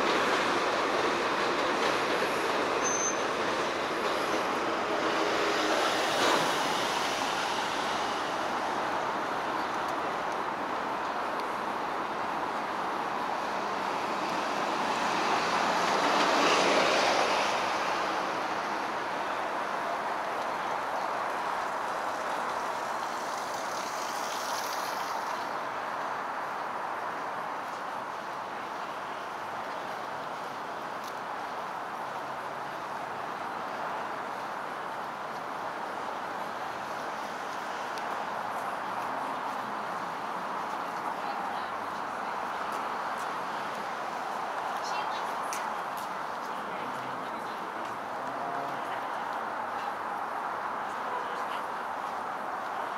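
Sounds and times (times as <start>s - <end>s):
street traffic rumble: 0.0s - 52.9s.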